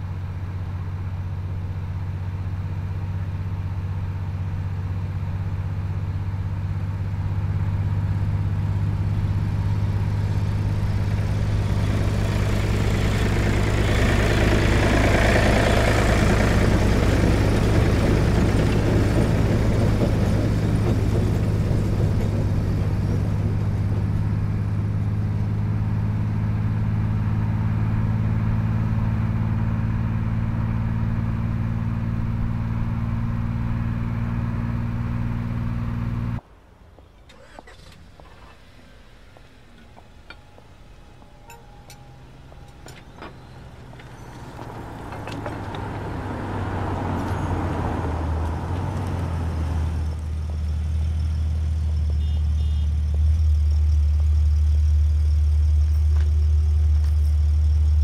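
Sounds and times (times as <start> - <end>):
engine drone and road noise: 0.0 - 58.0.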